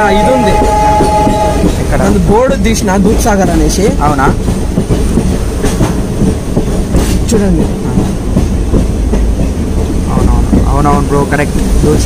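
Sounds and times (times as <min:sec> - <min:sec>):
train rumbling: 0:00.0 - 0:12.0
wheel clatter on rails: 0:00.0 - 0:12.0.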